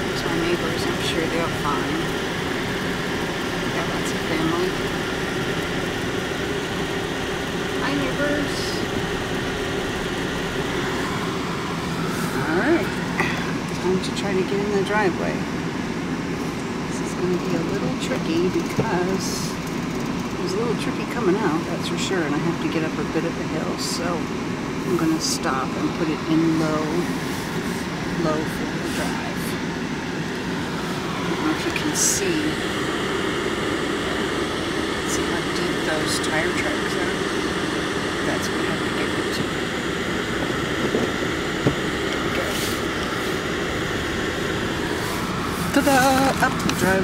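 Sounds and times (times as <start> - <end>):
vehicle engine and tyre hum: 0.0 - 47.0.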